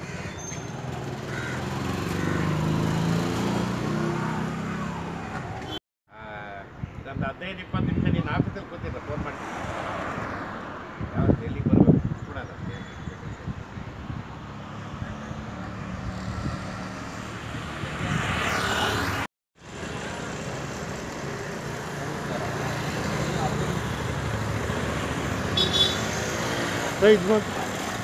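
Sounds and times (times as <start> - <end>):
street traffic noise: 0.0 - 28.0
vehicle passing: 0.9 - 5.6, 14.2 - 28.0.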